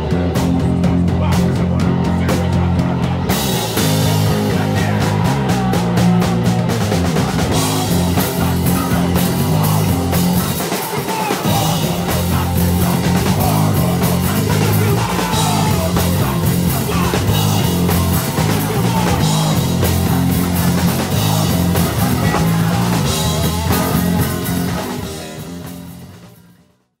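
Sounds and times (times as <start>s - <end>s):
punk band playing live: 0.0s - 26.9s.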